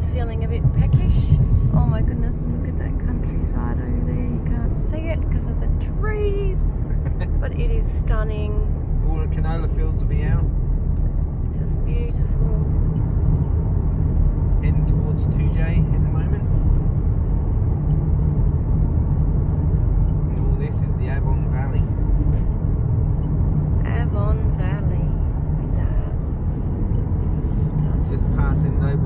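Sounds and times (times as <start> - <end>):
car cabin road and engine noise: 0.0 - 29.0.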